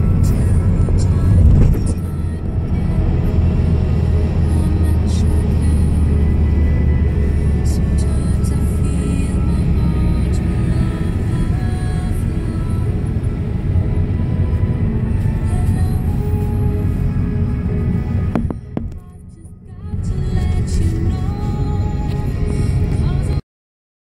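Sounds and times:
car road rumble from inside: 0.0s - 23.4s
music playing: 0.0s - 23.4s.

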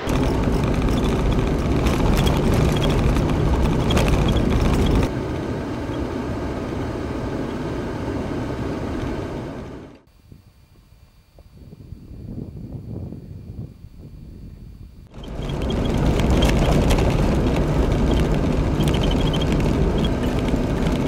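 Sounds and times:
gravel clicks: 0.0s - 5.1s, 15.1s - 21.0s
vehicle engine and tyre rumble: 0.0s - 10.0s, 15.0s - 21.0s.

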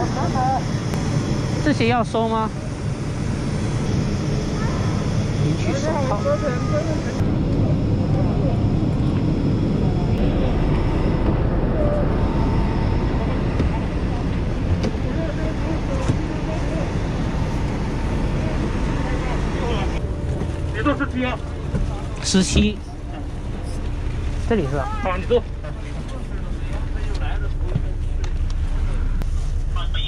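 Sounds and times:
faint steady engine whine: 0.0s - 30.0s
low engine rumble: 0.0s - 30.0s.

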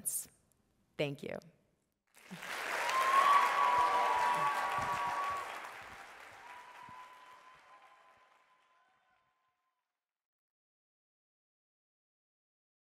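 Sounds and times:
audience applauding: 2.2s - 9.4s.

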